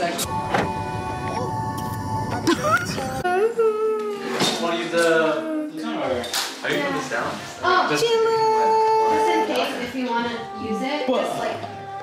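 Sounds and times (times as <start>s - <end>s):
background music with gliding held notes: 0.0s - 4.4s, 5.7s - 12.0s.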